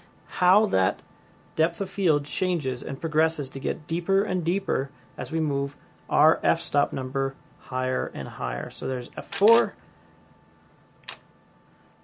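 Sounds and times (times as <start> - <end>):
camera shutter click: 9.3 - 9.7.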